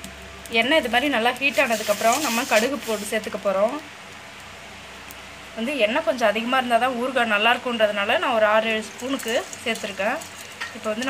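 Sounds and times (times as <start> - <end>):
hot oil sizzling in a pan: 0.0 - 11.0.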